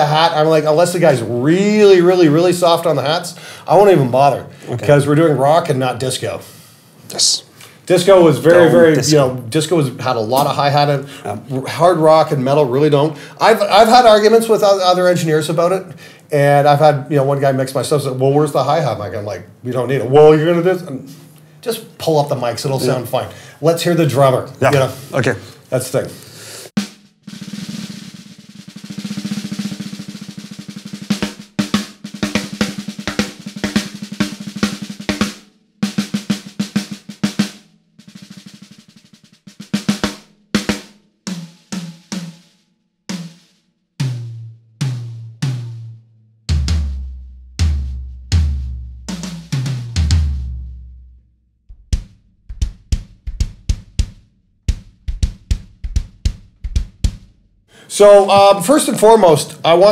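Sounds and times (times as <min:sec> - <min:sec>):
snare drum rolls and strokes: 0:07.9 - 0:15.8, 0:26.7 - 0:51.0, 0:51.8 - 0:59.9
tom drum hits: 0:26.8 - 0:38.4, 0:44.0 - 0:51.1, 0:51.7 - 0:57.4.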